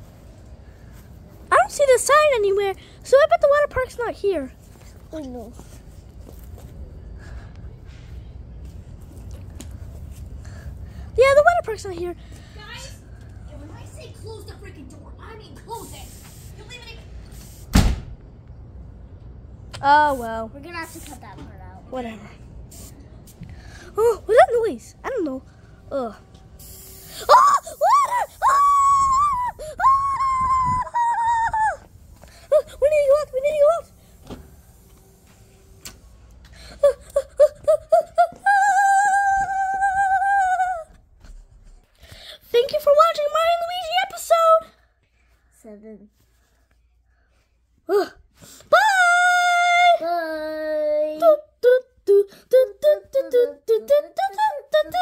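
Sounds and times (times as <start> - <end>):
high-pitched voice wailing: 27.3 - 31.8.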